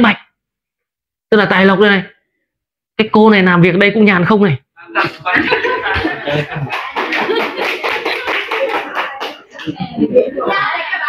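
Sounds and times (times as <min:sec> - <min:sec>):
people clapping: 0:05.1 - 0:10.8.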